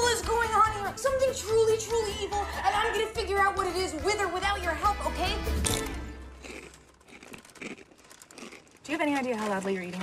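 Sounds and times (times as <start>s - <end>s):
person eating crunchy food: 5.6s - 8.9s
crinkling: 5.7s - 10.0s.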